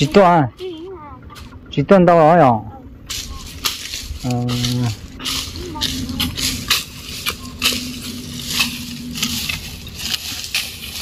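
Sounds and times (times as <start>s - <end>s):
hand tools chopping dry grass: 3.1s - 11.0s.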